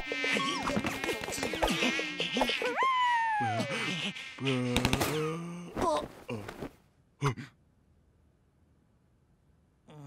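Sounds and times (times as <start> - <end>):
cartoon mosquito buzzing: 0.0 - 4.8.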